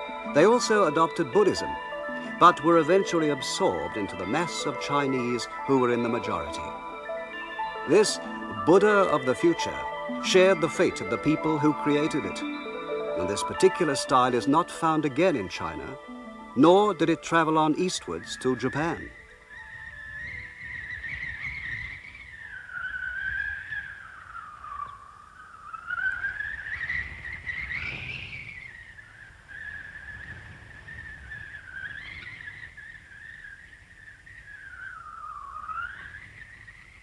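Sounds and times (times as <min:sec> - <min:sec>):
gliding whistle-like synthesizer tone: 0:00.0 - 0:28.9, 0:34.4 - 0:37.0.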